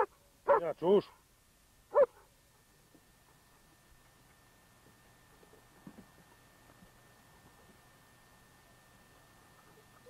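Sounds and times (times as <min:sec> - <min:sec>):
dog barking: 0:00.0 - 0:00.7, 0:01.9 - 0:02.3.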